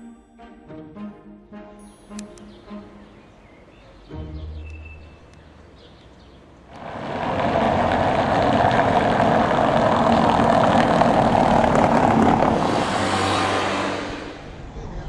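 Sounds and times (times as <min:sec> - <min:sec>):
vehicle rumbling over cobbles: 0:05.5 - 0:14.0.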